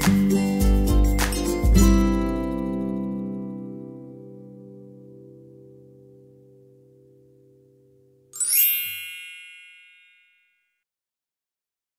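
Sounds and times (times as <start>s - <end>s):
high bell-like chime: 8.4s - 10.8s.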